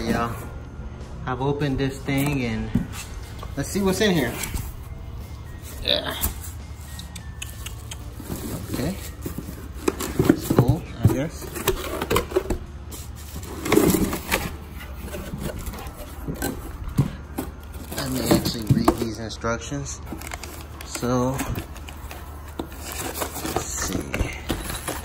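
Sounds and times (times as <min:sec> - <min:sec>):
packaging crinkling and rustling: 0:08.1 - 0:19.4, 0:20.0 - 0:25.0.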